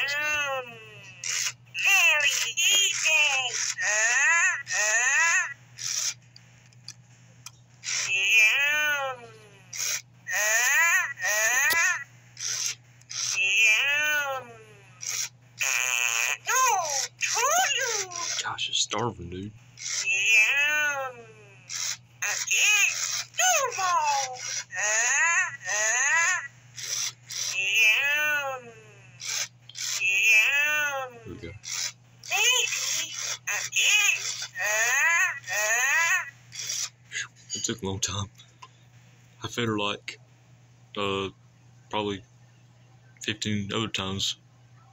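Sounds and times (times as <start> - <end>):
electronic toy warbling calls: 0.0 - 6.2, 7.8 - 18.5, 19.8 - 37.0.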